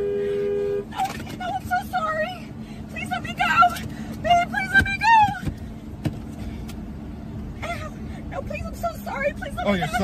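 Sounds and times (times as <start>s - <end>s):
low hum of car: 0.0s - 10.0s.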